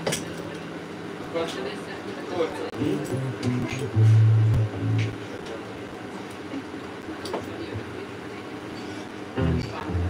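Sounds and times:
club room noise: 1.0s - 10.0s.

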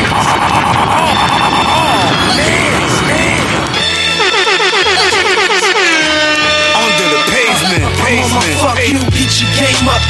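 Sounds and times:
heavy bass line: 0.0s - 10.0s
hip hop beat: 0.1s - 10.0s
falling pitched notes: 0.4s - 8.8s.

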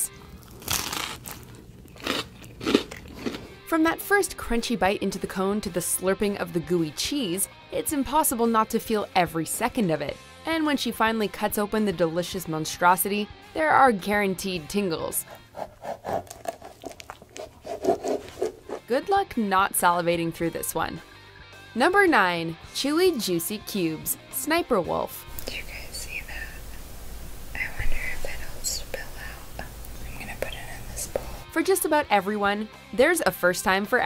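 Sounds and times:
pizza crust crunching: 0.3s - 3.6s, 15.3s - 18.8s.

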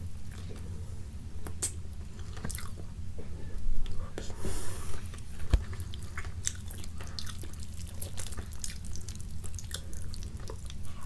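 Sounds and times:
wet mouth sounds and chewing: 1.4s - 2.8s, 5.4s - 11.0s.

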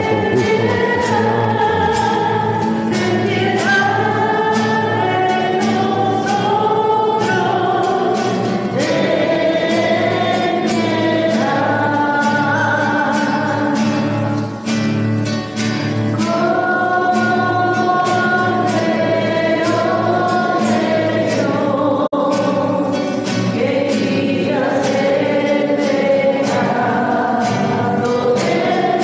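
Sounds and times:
instrumental accompaniment: 0.0s - 21.8s
church choir singing a hymn: 0.0s - 29.0s.

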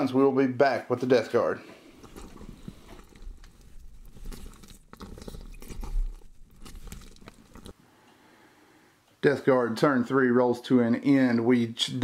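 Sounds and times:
small knocks and scrapes: 1.8s - 7.8s
camera handling rumble: 2.0s - 7.8s.

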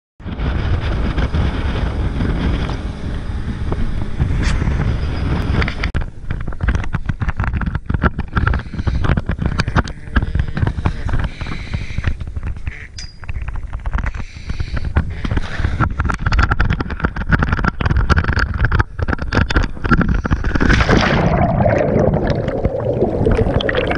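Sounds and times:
boat engine rumble: 0.2s - 23.9s
wind buffeting microphone: 0.2s - 23.9s.

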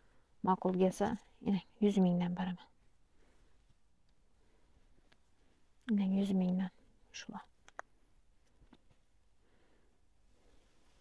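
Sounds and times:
soft whispered voice: 5.8s - 7.6s.

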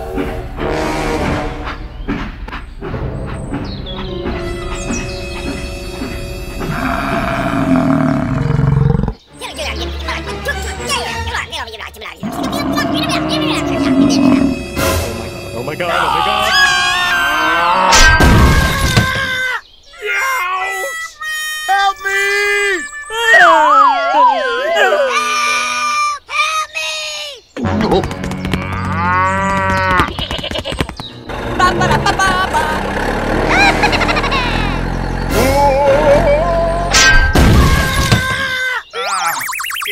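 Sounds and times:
background music: 0.0s - 8.4s, 9.2s - 17.3s, 27.6s - 29.5s, 31.1s - 37.7s
loud animal roar: 6.7s - 9.2s, 12.2s - 14.6s
quick run of clicks: 28.0s - 31.2s.

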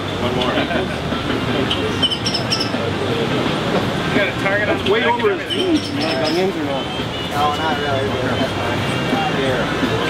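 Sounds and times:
people chattering: 0.0s - 10.0s
steady background noise: 0.0s - 10.0s.

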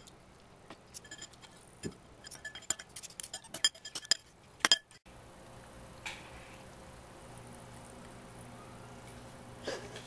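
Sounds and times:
cutlery clinking against a bowl: 0.9s - 5.0s.

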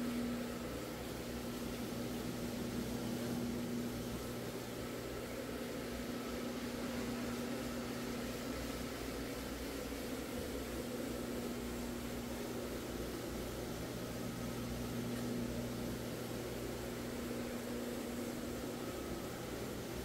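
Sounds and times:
rotary floor machine humming: 0.0s - 20.0s.

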